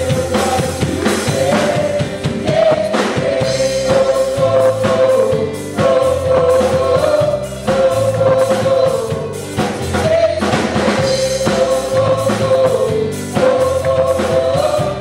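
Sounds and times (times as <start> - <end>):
band playing: 0.0 - 15.0
women singing gospel in harmony: 0.0 - 15.0.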